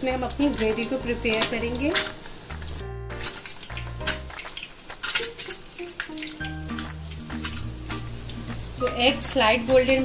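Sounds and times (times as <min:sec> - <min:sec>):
eggs sizzling in oil: 0:00.0 - 0:10.0
soft background music: 0:00.0 - 0:10.0.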